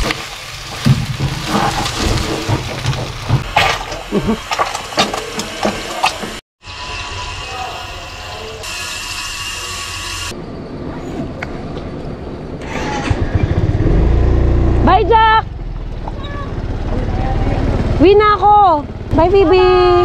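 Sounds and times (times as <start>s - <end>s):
hot dogs sizzling in oil: 0.0s - 6.4s
scooter engine idling: 15.4s - 20.0s.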